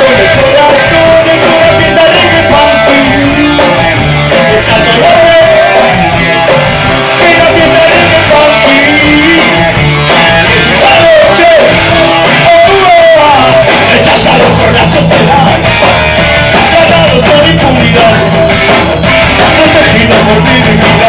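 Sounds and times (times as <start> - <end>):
person singing: 0.0 - 15.8, 16.5 - 18.8, 19.4 - 21.0
drum kit: 0.0 - 21.0
electric guitars: 0.0 - 21.0.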